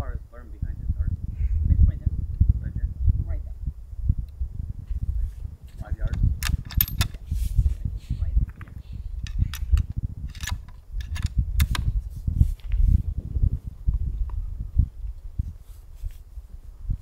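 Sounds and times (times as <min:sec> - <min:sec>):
wind rumble on microphone: 0:00.0 - 0:17.0
rifle bolt clicking: 0:06.1 - 0:07.2, 0:08.5 - 0:11.9.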